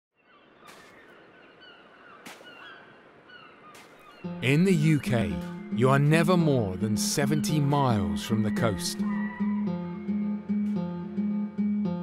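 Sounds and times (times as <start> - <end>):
birds whistling: 0.2 - 9.8
soft crunching footsteps: 0.6 - 1.3, 1.9 - 2.8, 3.7 - 4.2.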